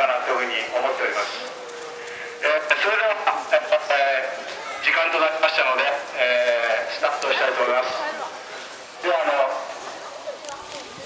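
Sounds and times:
man announcing over public address: 0.0s - 8.2s, 9.0s - 9.7s.

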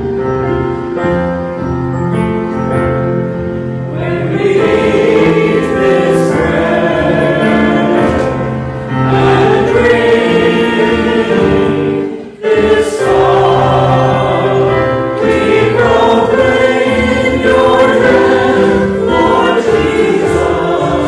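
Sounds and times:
voices singing church music: 0.0s - 21.0s.

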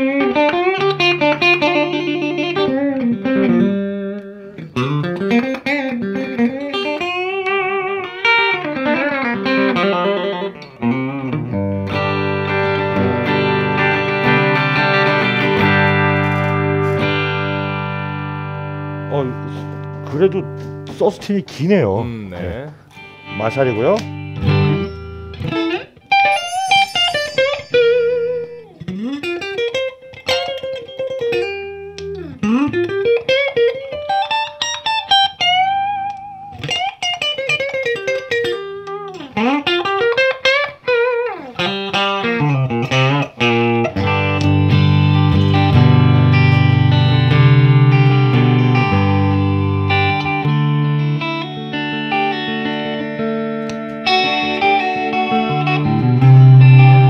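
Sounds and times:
clean electric guitar: 0.0s - 57.0s.

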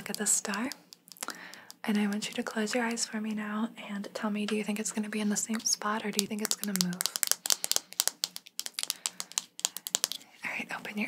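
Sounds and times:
fingernails tapping plastic: 6.2s - 10.2s.

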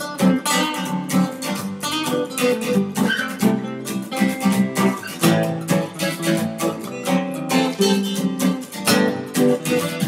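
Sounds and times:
acoustic guitars strumming chords: 0.0s - 10.0s.

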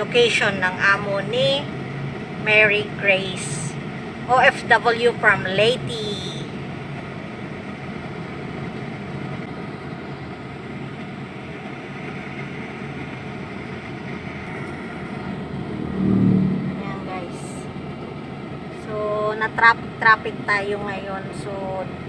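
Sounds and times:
car road and engine noise: 0.0s - 22.0s.

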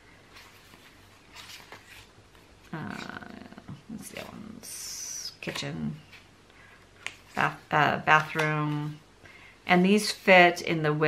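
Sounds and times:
paper sheets rustling: 0.2s - 3.1s
person speaking: 2.7s - 6.2s, 7.2s - 9.0s.

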